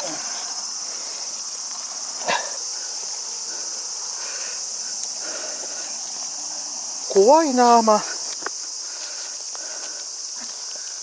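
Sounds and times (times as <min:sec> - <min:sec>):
insects shrilling: 0:00.0 - 0:11.0.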